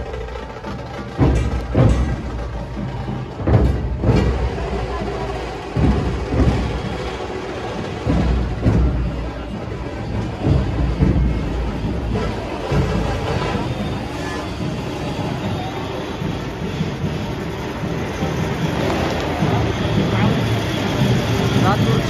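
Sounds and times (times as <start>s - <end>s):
large drums booming: 0.0s - 15.6s
crowd noise: 0.0s - 22.0s.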